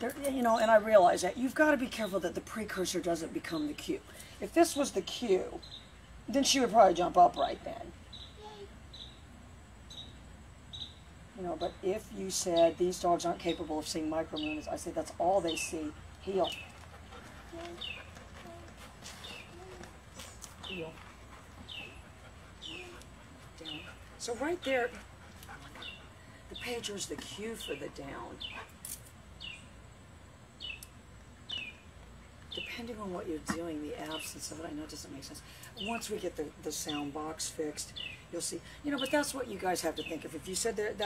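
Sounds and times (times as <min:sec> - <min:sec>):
small bird chirping faintly: 0:07.2 - 0:28.7
faint bird chirps: 0:08.0 - 0:09.3.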